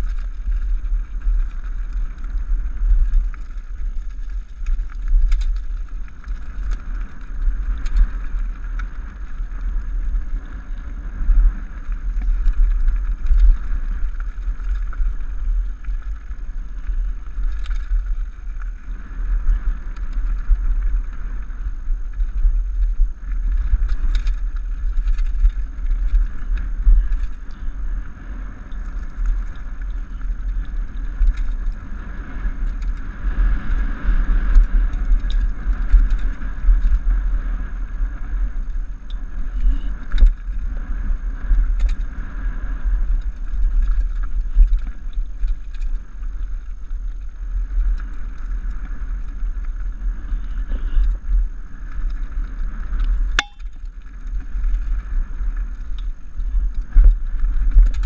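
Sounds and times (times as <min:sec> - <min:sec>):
bike rattling: 0:00.0 - 0:58.0
wind and vibration rumble on microphone: 0:00.0 - 0:58.0.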